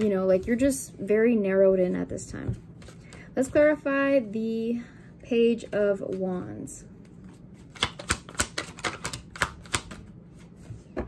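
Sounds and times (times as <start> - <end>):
cards being shuffled: 2.7 - 3.6, 7.0 - 11.0.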